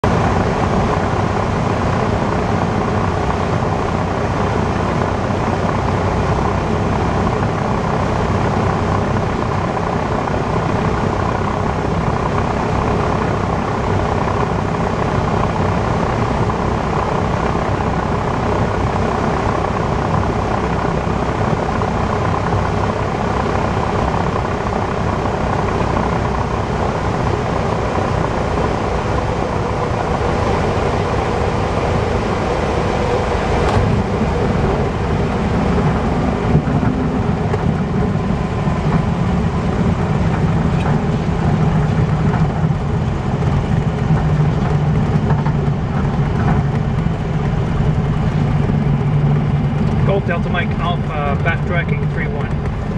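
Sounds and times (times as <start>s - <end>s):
wind noise: 0.0s - 50.9s
aircraft engine and propeller: 0.0s - 52.9s
wheels bumping on runway: 33.6s - 52.9s.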